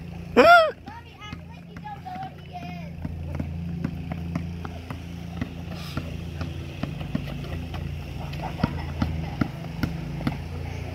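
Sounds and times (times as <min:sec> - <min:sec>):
basketball bouncing on asphalt: 0:00.0 - 0:10.9.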